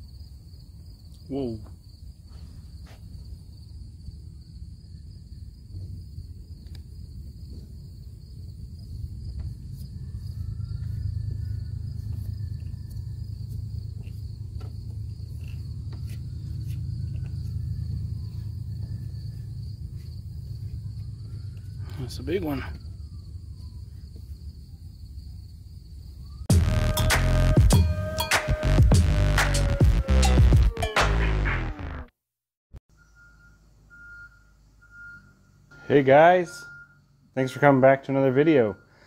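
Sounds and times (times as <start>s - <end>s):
insects trilling: 0.0s - 26.5s, 32.9s - 39.0s.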